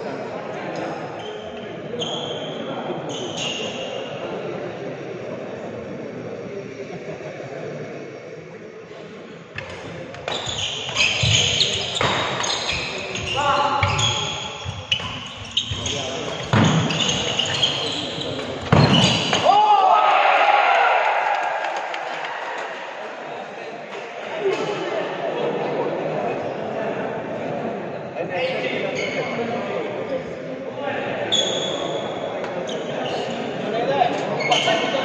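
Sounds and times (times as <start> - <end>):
murmur of voices: 0.0 - 35.0
shoe squeaks on court: 1.2 - 4.0, 10.2 - 19.4, 31.3 - 33.4, 34.2 - 35.0.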